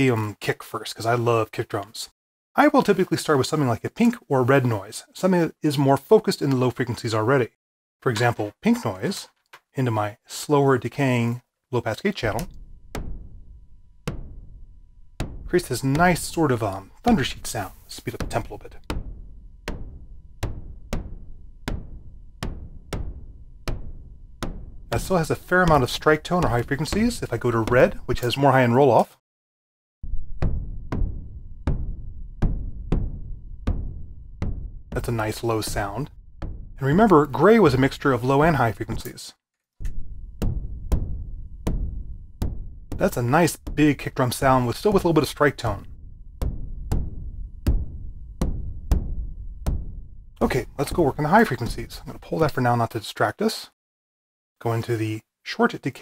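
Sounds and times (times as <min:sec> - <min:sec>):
noise kick drum hits: 0:12.4 - 0:17.4, 0:18.2 - 0:28.1, 0:30.0 - 0:37.2, 0:39.8 - 0:52.1.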